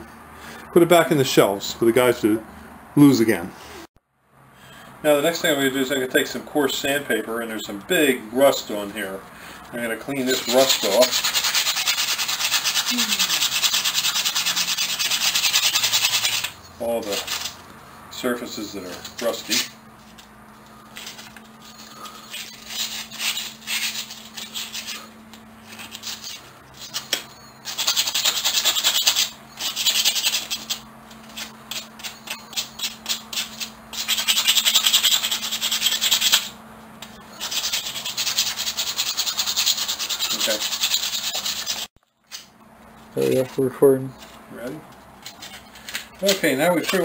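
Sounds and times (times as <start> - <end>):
sandpaper scratching on steel: 10.1 - 17.6, 18.6 - 19.7, 21.0 - 36.6, 37.3 - 41.9.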